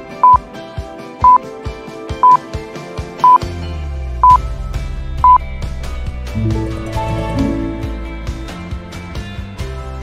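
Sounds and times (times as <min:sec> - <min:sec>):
background music with deep bass: 0:00.8 - 0:10.0
countdown timer beeps: 0:01.2 - 0:01.4, 0:04.2 - 0:04.4, 0:05.2 - 0:05.4.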